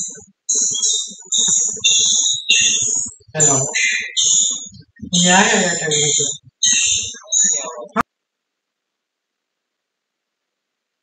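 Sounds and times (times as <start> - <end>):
distorted garbled voice: 0.0 - 8.0.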